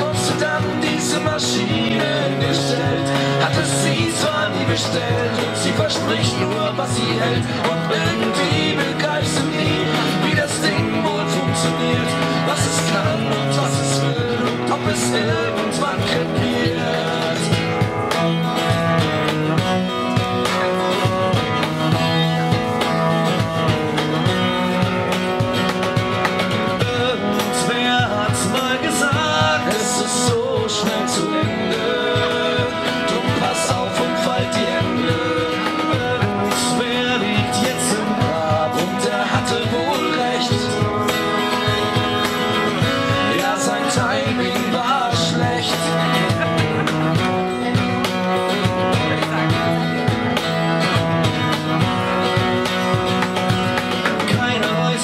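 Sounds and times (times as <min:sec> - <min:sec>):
cajon beat: 0:00.0 - 0:55.0
cello: 0:00.0 - 0:55.0
strummed acoustic guitar: 0:00.0 - 0:55.0.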